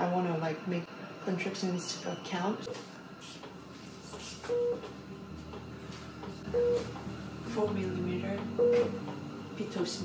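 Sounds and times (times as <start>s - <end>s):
medical equipment beep: 4.5s - 4.9s, 6.5s - 7.0s, 8.6s - 9.0s.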